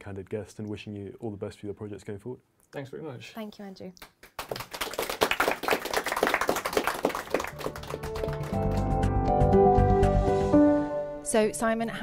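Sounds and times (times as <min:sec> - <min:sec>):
audience applauding: 0:04.2 - 0:09.4.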